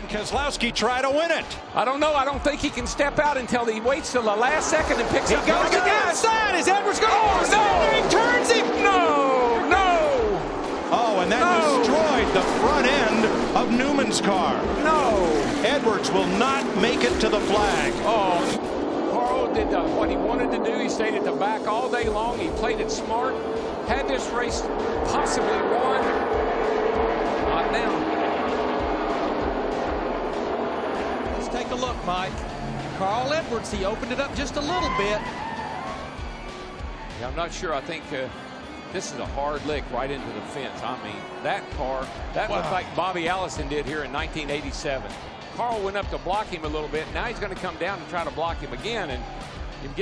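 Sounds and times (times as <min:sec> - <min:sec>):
race noise: 0:00.0 - 0:50.0
people yelling and screaming: 0:00.8 - 0:43.9.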